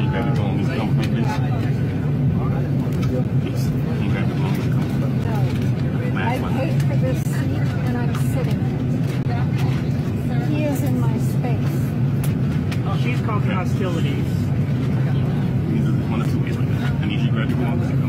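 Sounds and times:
people talking: 0:00.0 - 0:12.0, 0:12.8 - 0:18.0
airliner cabin hum: 0:00.0 - 0:18.0.

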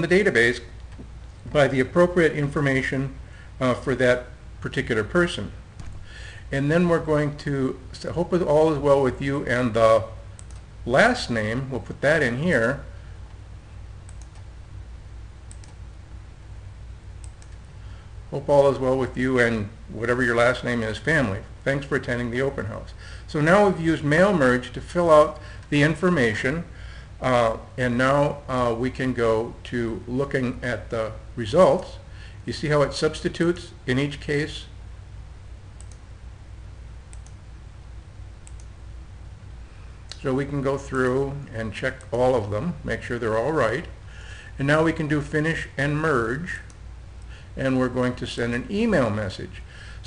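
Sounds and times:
steady low hum: 0:00.0 - 0:50.0
computer mouse clicks: 0:10.4 - 0:10.7, 0:14.1 - 0:14.5, 0:15.5 - 0:15.8, 0:17.2 - 0:17.6, 0:35.8 - 0:36.0, 0:37.1 - 0:37.4, 0:38.4 - 0:38.7.

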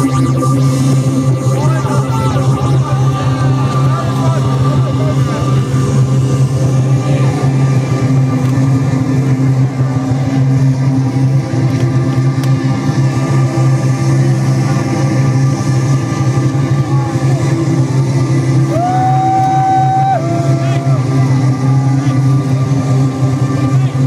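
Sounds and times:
crowd voices: 0:00.0 - 0:24.0
distorted low drone: 0:00.0 - 0:24.0.

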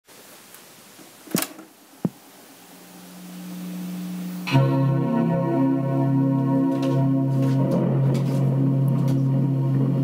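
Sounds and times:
faint hiss: 0:00.1 - 0:04.5
low steady keyboard note: 0:03.0 - 0:10.0
organ music: 0:03.4 - 0:10.0.

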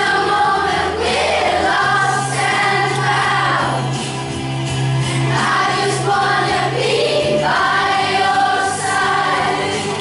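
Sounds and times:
children singing together: 0:00.0 - 0:04.1, 0:05.1 - 0:10.0.

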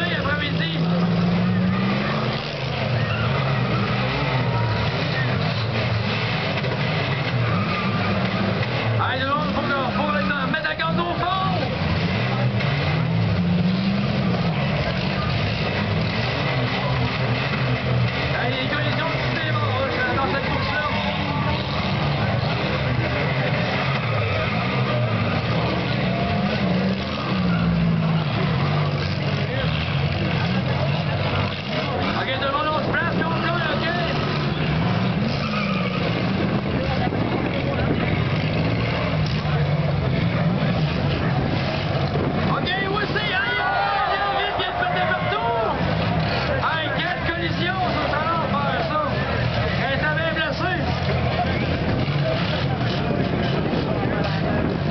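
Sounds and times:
car engines revving: 0:00.0 - 0:54.9
cars ramming: 0:00.0 - 0:54.9
crowd chatter and shouts: 0:00.0 - 0:54.9.

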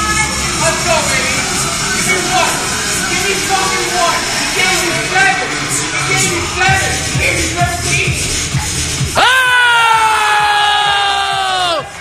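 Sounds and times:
person yelling: 0:09.2 - 0:11.8.

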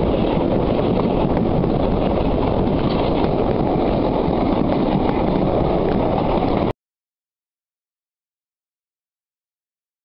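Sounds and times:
train wind and running noise: 0:00.0 - 0:06.7.

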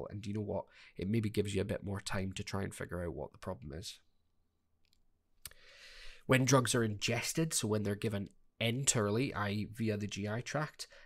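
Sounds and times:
soft intake of breath: 0:05.5 - 0:06.3.

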